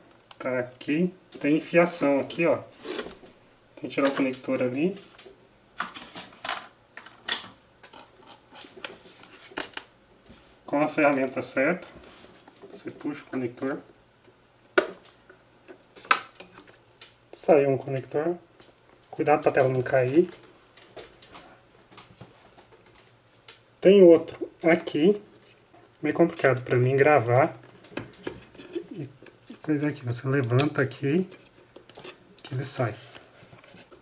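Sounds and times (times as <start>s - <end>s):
person speaking: 0.4s - 2.8s, 3.8s - 5.1s, 10.7s - 12.0s, 12.7s - 13.9s, 17.3s - 18.5s, 19.1s - 20.4s, 23.8s - 25.3s, 26.0s - 27.6s, 28.7s - 31.4s, 32.4s - 33.2s.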